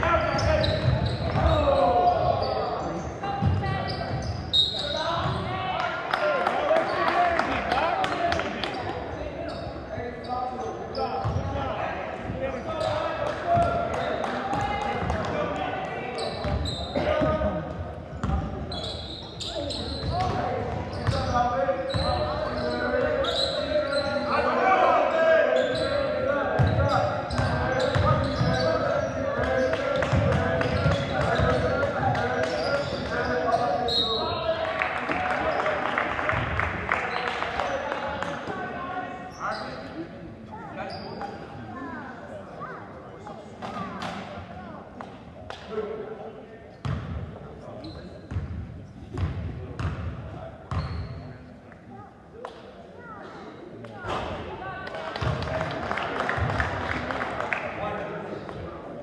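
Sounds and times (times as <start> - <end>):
people calling out and talking: 0.0 - 48.4
sneakers squeaking: 0.1 - 5.8, 8.3 - 15.2, 16.0 - 24.6, 25.5 - 34.5, 35.3 - 41.6, 46.7 - 51.6.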